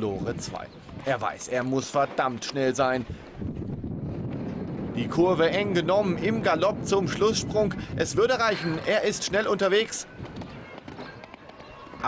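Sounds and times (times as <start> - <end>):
horse galloping on sand: 8.5 - 12.0.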